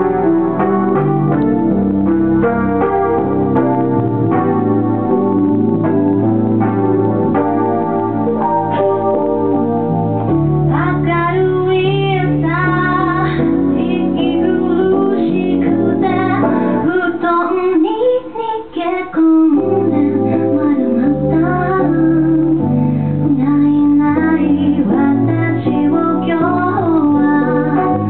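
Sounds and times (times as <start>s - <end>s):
piano chords: 0.0s - 28.0s
woman singing with vibrato: 10.7s - 28.0s.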